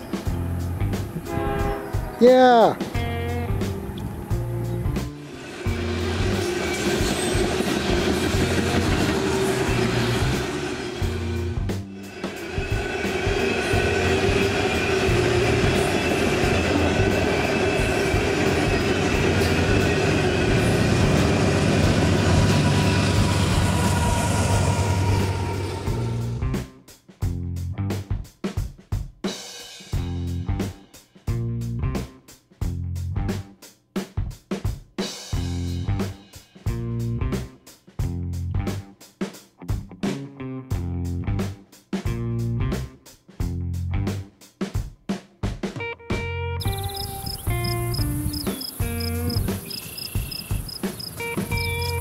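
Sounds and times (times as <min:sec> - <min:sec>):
freight train rumbling past: 0:00.0 - 0:26.8, 0:46.6 - 0:52.0
high whine: 0:03.0 - 0:26.5
music with a beat: 0:26.6 - 0:40.4, 0:41.5 - 0:52.0.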